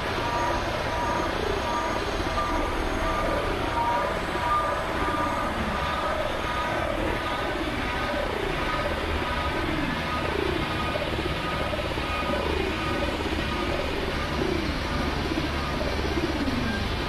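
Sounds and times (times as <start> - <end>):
noisy synthesizer drone: 0.0 - 17.0.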